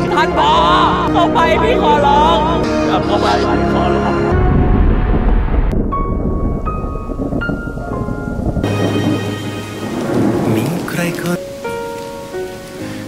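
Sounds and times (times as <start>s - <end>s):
thunder rumbling: 4.3s - 12.8s
rain: 4.3s - 13.0s
soft music with held notes: 7.0s - 13.0s.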